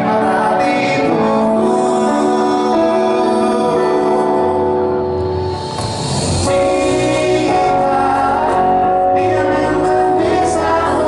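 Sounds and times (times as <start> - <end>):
man singing lead vocal: 0.0 - 5.3, 6.0 - 11.0
live pop band: 0.0 - 11.0.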